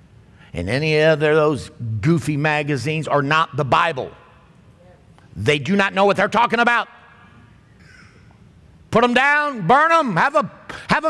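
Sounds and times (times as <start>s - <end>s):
man speaking: 0.6s - 7.0s, 8.9s - 11.0s.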